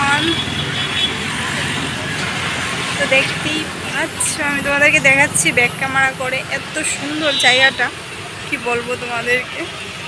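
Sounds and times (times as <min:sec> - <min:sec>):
woman's voice: 0:00.0 - 0:00.5, 0:03.0 - 0:09.8
road traffic: 0:00.0 - 0:10.0.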